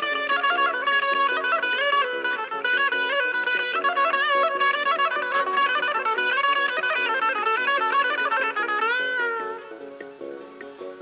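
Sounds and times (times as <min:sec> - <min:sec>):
electric guitar lead melody: 0:00.0 - 0:11.0.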